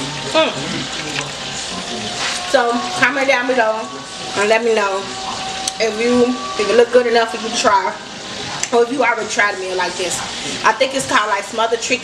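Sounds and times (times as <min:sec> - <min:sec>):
chicken sizzling in a pan: 0:00.0 - 0:12.0.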